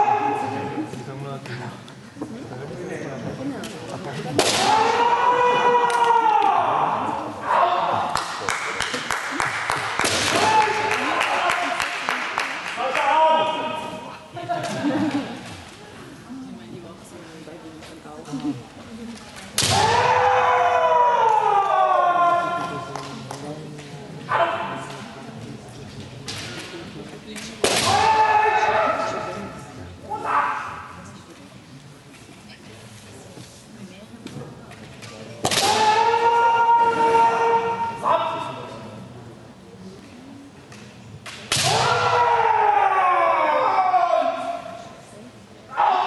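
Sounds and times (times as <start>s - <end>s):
sharp crack: 4.4s - 5.0s, 19.6s - 20.1s, 35.4s - 36.0s, 40.8s - 42.1s
long high shout: 19.8s - 22.7s, 41.6s - 44.8s, 45.7s - 46.0s.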